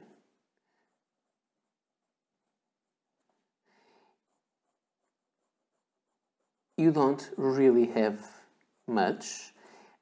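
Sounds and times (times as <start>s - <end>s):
fountain pen scratching on paper: 0.7s - 10.0s.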